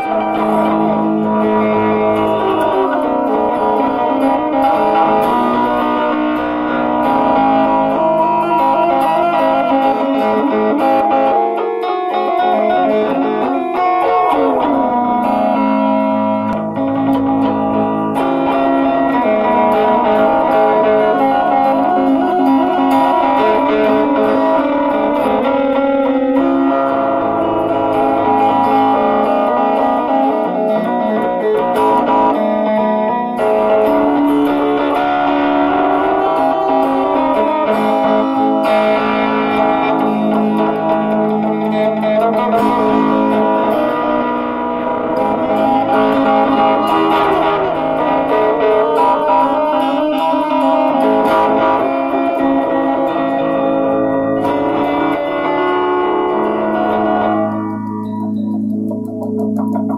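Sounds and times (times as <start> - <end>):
guitar music with ringing notes: 0.0 - 59.9.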